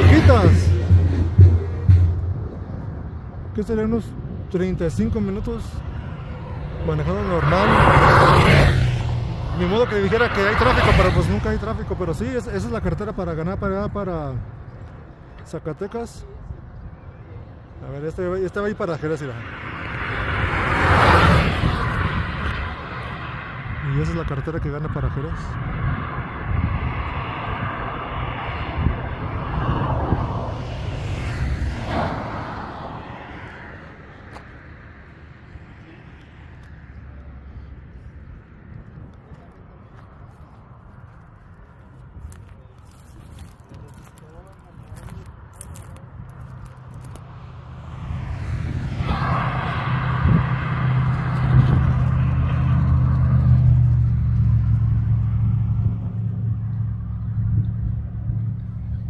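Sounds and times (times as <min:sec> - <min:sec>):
heavy vehicle engine drone: 0:00.0 - 0:13.1, 0:19.1 - 0:59.0
vehicle passing on highway: 0:00.0 - 0:15.4, 0:16.2 - 0:59.0.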